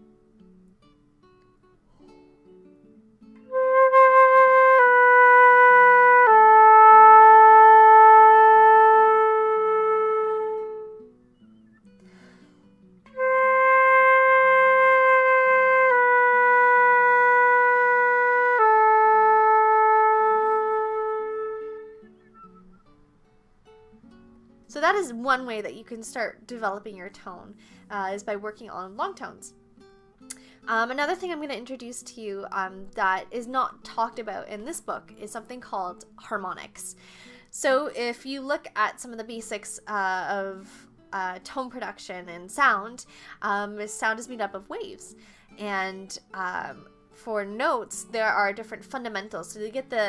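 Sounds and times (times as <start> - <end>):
soft guitar music: 0.0 - 50.0
flute playing slow notes: 3.5 - 12.2, 13.1 - 22.9.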